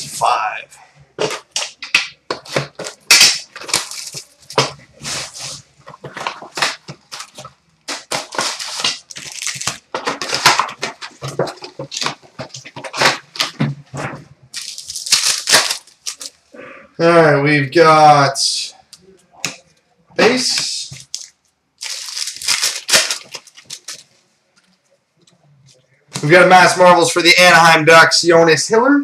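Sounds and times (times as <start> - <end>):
plastic wrappers crinkling and ripping: 1.2 - 13.6, 14.5 - 16.5, 20.2 - 24.8.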